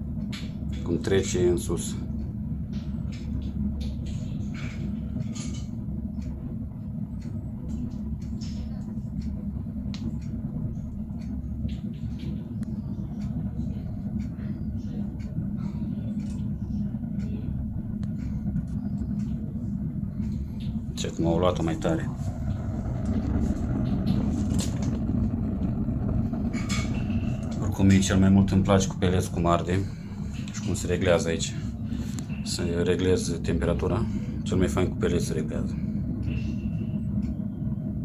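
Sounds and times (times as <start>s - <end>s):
faint fire crackles: 0.0s - 38.0s
pellet fire rumbling: 0.0s - 38.0s.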